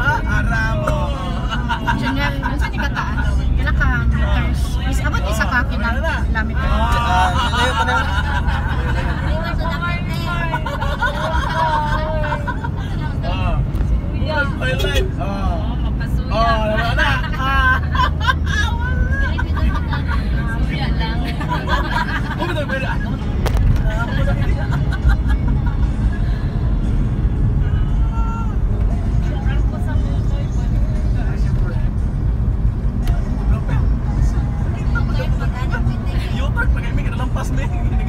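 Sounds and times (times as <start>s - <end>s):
people's voices: 0.0s - 38.0s
vehicle engine and road rumble: 0.0s - 38.0s.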